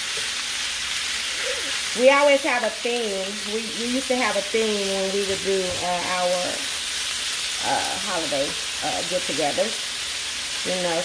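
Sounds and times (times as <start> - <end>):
steak sizzling in a skillet: 0.0 - 11.0.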